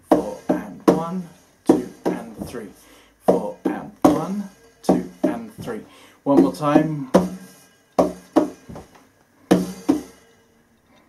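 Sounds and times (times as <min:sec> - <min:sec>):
hands striking a cajon: 0:00.1 - 0:02.7, 0:03.3 - 0:08.9, 0:09.5 - 0:10.2.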